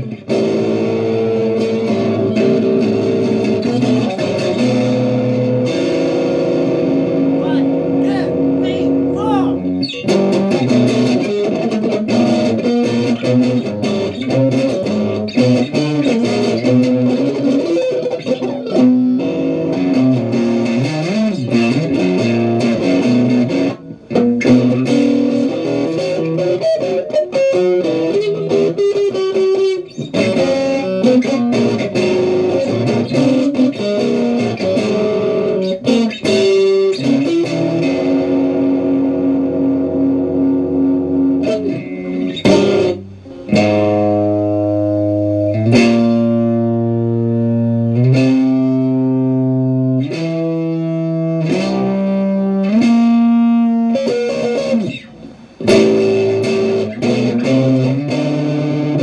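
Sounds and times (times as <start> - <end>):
electric guitar playing: 0.0 - 59.0.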